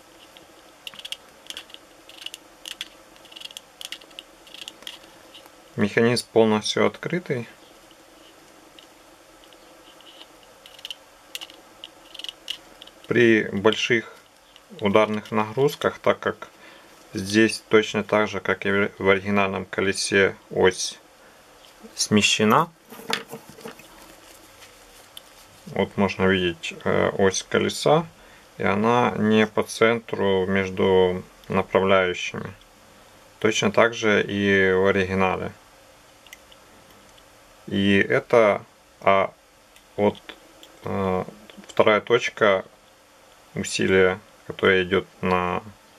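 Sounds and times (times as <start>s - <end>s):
small plastic model parts clicking: 0.2s - 5.5s, 8.8s - 15.4s.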